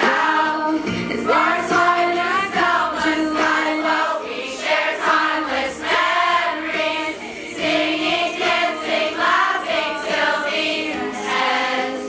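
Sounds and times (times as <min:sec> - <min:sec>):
girls choir singing: 0:00.0 - 0:12.0.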